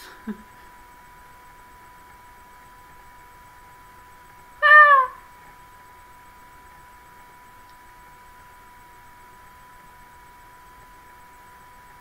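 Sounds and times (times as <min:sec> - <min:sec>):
cat meowing: 0:04.6 - 0:05.2.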